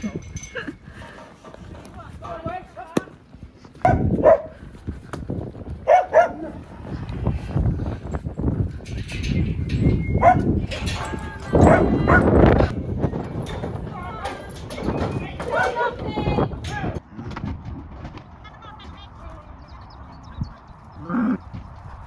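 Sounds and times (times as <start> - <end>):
dog barking: 3.8 - 4.5, 5.9 - 6.6, 10.2 - 10.5, 11.6 - 12.3.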